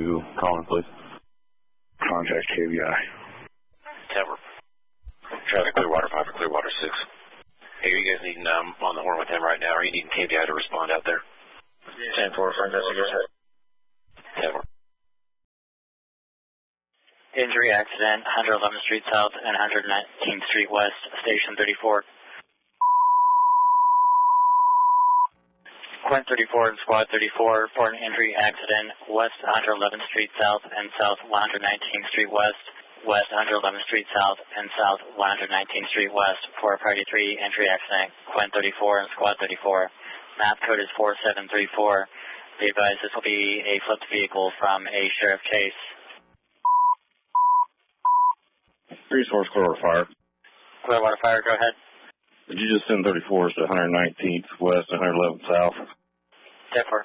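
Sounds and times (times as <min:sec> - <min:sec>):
radio alert beeps: 0:22.8 - 0:25.3, 0:46.7 - 0:48.4.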